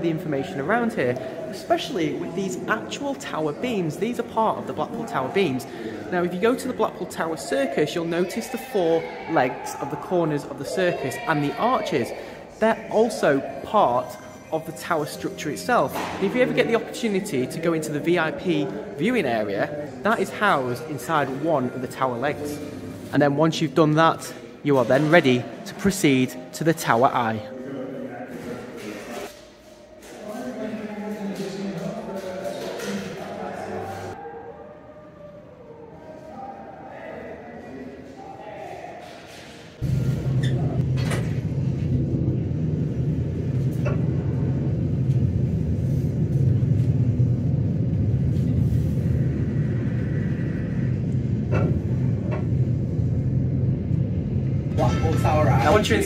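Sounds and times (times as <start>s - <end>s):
lift cabin rumbling: 40.2s - 56.0s.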